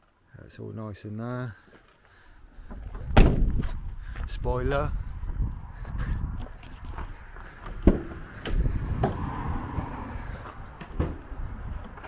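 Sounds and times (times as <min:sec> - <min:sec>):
footsteps on gravel: 0:01.6 - 0:07.9.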